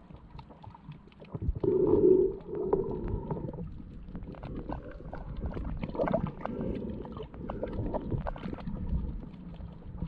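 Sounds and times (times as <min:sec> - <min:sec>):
gurgling underwater rumble: 0:00.0 - 0:10.0.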